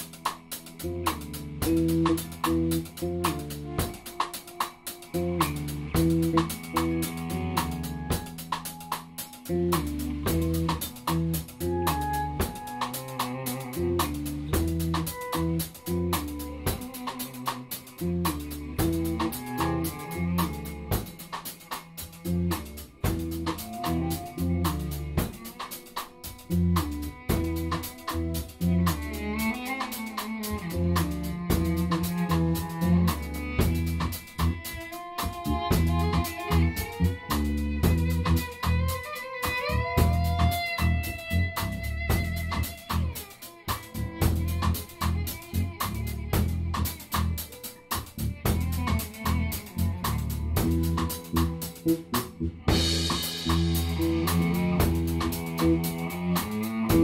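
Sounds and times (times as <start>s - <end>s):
bass guitar: 0.0s - 57.0s
drum kit beat: 0.0s - 57.0s
electric cello bowing: 0.0s - 57.0s.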